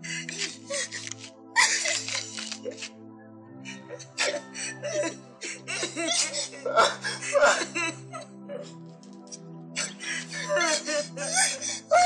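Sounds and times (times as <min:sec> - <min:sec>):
man and woman sobbing: 0:00.0 - 0:03.0, 0:03.7 - 0:12.0
background music with held notes: 0:00.0 - 0:12.0.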